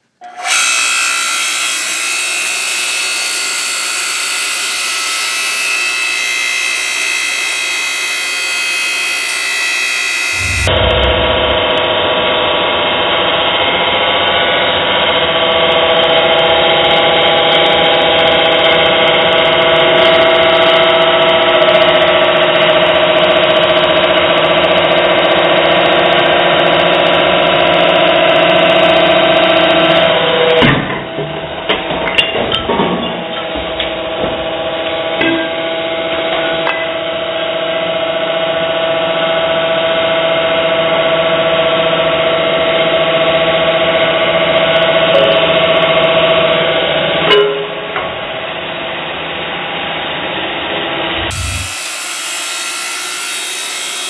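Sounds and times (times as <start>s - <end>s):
log splitter motor whining: 0.2s - 11.3s, 51.1s - 54.0s.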